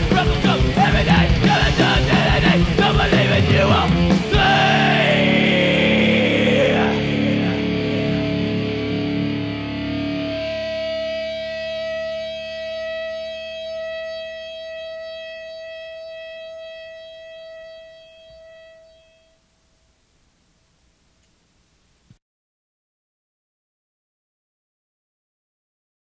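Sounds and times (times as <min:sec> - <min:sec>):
heavy rock band: 0:00.0 - 0:12.6
distorted electric guitar note: 0:00.0 - 0:21.0
faint hiss: 0:19.6 - 0:22.2.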